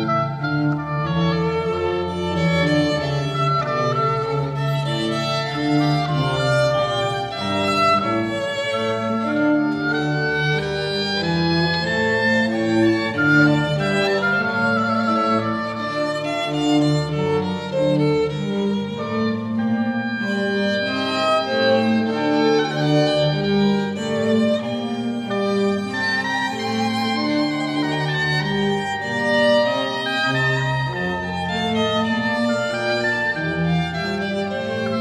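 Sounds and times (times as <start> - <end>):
organ accompaniment: 0.0 - 35.0
violin melody: 0.0 - 35.0.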